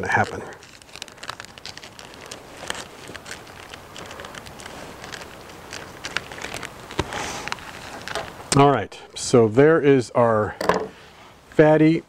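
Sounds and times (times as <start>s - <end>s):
plastic crinkling: 0.0s - 8.6s.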